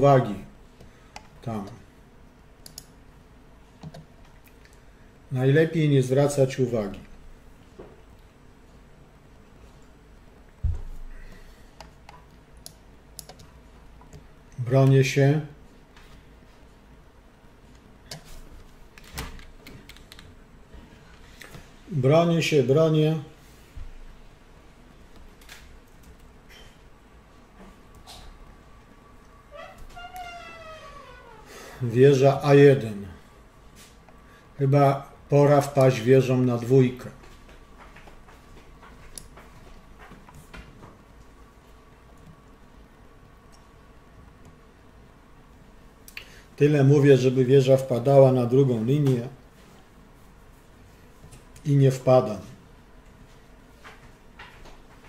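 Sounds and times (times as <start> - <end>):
low steady hum: 0.0 - 55.0
computer mouse clicks: 1.1 - 1.4, 2.6 - 3.0, 3.8 - 4.8, 11.8 - 14.2, 18.1 - 20.4.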